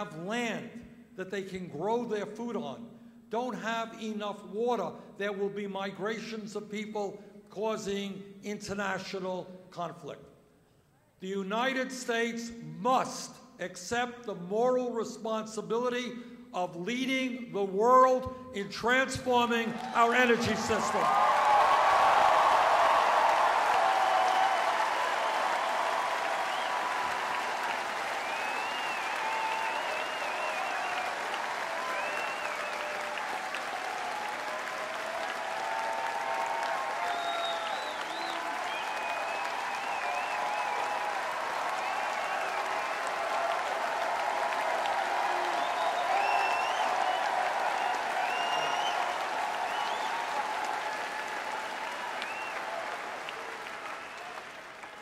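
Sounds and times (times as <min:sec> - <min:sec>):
crowd applauding and cheering: 0:19.6 - 0:55.0
shouts and whoops: 0:19.7 - 0:54.5.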